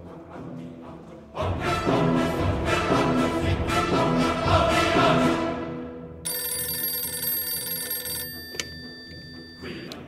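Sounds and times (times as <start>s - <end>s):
telephone bell ringing: 6.3s - 10.0s.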